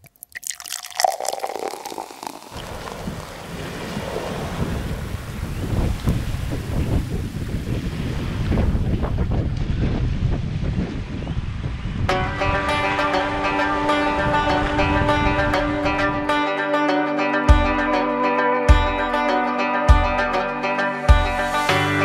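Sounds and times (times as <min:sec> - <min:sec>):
small waves lapping on shore: 0:00.4 - 0:08.8
wind buffeting microphone: 0:02.5 - 0:16.4.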